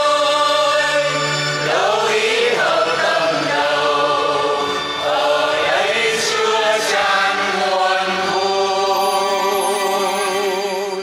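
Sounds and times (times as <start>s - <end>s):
choir singing a held chord: 0.0s - 10.7s.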